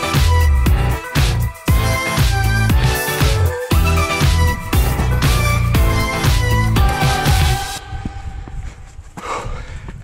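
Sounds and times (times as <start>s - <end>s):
wind rumbling on microphone: 7.8s - 10.0s.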